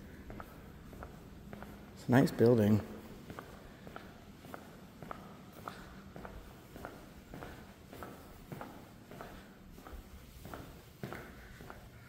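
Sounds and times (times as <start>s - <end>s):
footsteps on tiled floor: 0.0s - 12.0s.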